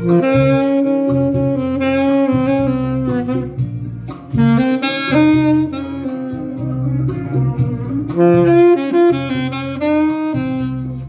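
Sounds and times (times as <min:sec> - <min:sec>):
guitar and bass backing track: 0:00.0 - 0:11.0
saxophone melody: 0:00.0 - 0:11.0.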